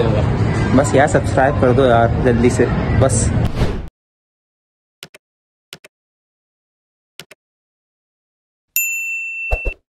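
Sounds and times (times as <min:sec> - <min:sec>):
notification bell chime: 0:08.8 - 0:09.8.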